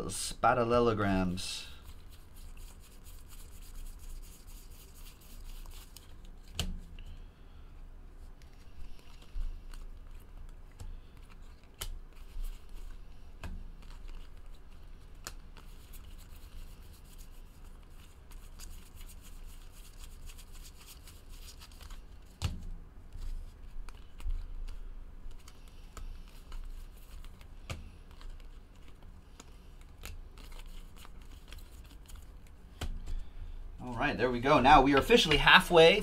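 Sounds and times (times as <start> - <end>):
cards flipped through by hand: 1.8 - 7.2, 8.3 - 33.3, 34.8 - 36.0.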